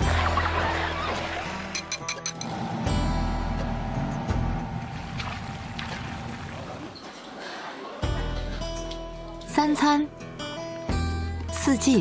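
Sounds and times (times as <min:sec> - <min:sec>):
soft background music: 0:08.0 - 0:12.0.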